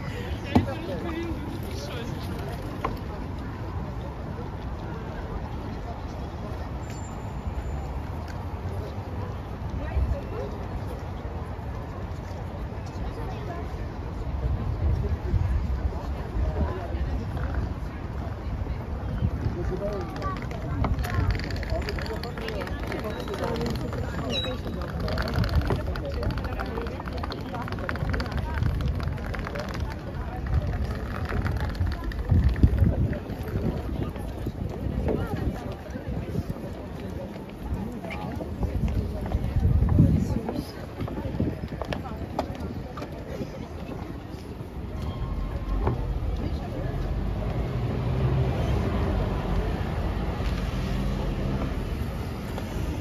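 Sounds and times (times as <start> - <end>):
city ambience: 0.0 - 53.0
faint voices of passers-by: 0.0 - 53.0
low street rumble: 0.0 - 53.0
wind buffeting microphone: 23.9 - 44.7.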